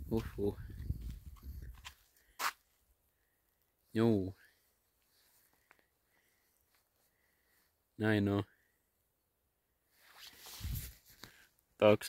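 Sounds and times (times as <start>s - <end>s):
microphone handling rumble: 0.0s - 1.9s.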